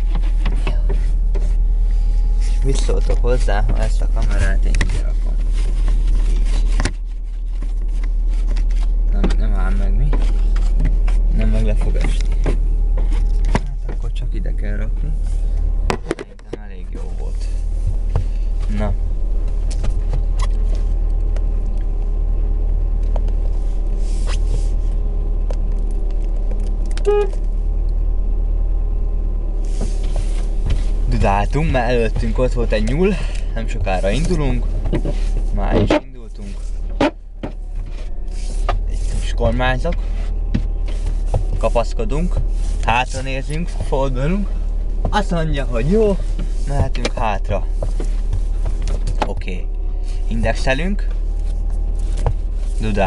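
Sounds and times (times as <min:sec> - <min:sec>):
car engine idling: 0:00.0 - 0:53.0
steady low hum: 0:00.0 - 0:53.0
fabric rustle: 0:00.1 - 0:09.0
car horn beep: 0:27.0 - 0:27.5.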